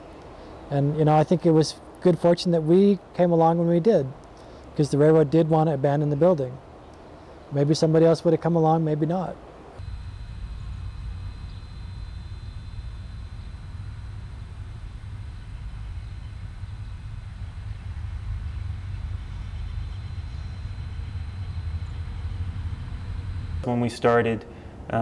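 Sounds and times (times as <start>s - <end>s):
low engine-like rumble: 9.8s - 25.0s.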